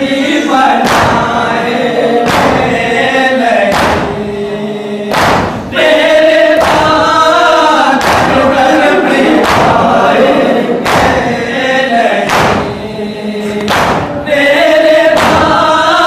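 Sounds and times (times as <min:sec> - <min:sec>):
men chanting in unison: 0:00.0 - 0:16.0
person reciting into a microphone: 0:00.0 - 0:16.0
chest-beating thuds: 0:00.8 - 0:01.5, 0:02.2 - 0:03.0, 0:03.7 - 0:04.3, 0:05.1 - 0:05.8, 0:06.6 - 0:07.1, 0:08.0 - 0:08.6, 0:09.3 - 0:10.0, 0:10.8 - 0:11.5, 0:12.2 - 0:12.9, 0:13.5 - 0:14.2, 0:15.1 - 0:15.7.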